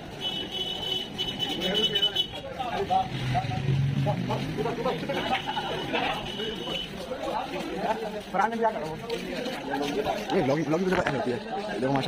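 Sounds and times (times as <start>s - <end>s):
street traffic: 0.0s - 12.0s
men talking in crowd: 1.2s - 12.0s.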